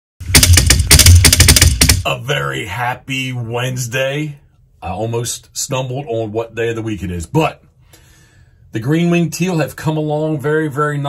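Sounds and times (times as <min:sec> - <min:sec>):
rapid loud clattering hits: 0:00.2 - 0:02.1.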